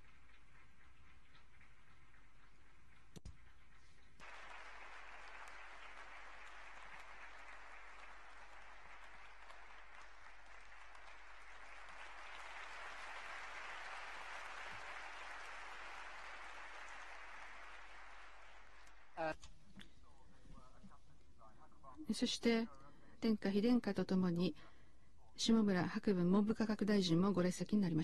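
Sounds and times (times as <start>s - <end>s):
hall audience applauding: 4.2s - 19.2s.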